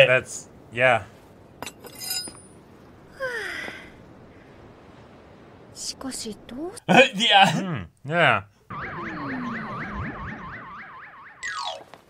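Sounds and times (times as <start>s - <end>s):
falling whistle: 8.7s - 11.5s
warbling electronic alarm tone: 8.7s - 11.8s.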